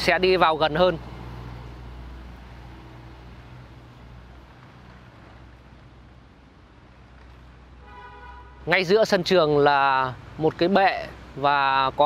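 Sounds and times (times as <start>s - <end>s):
faint outdoor hiss: 0.0s - 12.0s
vehicle engine humming: 0.0s - 12.0s.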